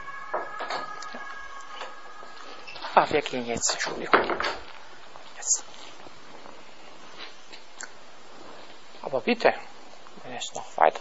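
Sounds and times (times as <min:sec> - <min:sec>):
man's voice: 0:00.0 - 0:04.6
faint high hum: 0:00.0 - 0:11.0
room hiss: 0:00.0 - 0:11.0.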